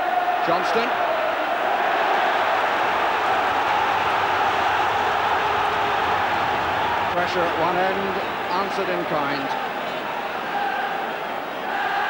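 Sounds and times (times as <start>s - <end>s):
football crowd voices: 0.0s - 12.0s.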